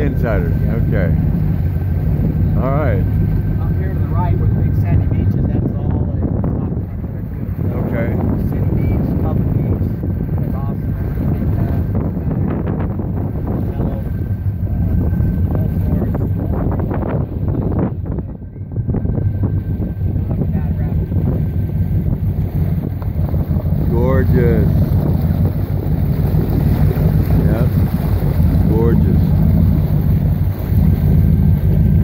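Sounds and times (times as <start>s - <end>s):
motorboat engine humming: 0.0s - 32.0s
water along hull: 0.0s - 32.0s
wind on microphone: 0.0s - 32.0s.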